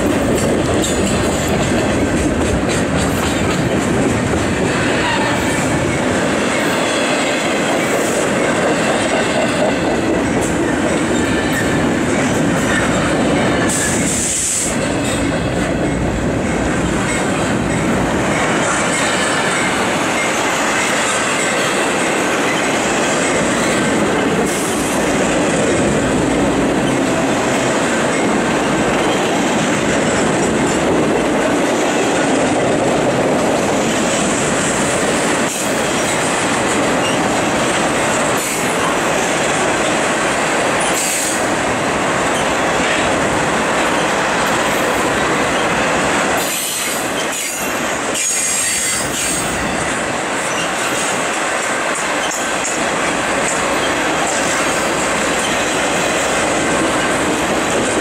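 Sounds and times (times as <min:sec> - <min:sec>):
wheels clicking over rail joints: 0:00.0 - 0:04.6
freight train rumble and rattle: 0:00.0 - 0:58.0.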